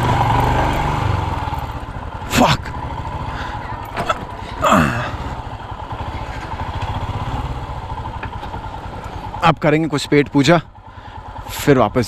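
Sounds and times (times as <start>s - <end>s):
motorcycle engine running at low speed: 0.0s - 12.0s.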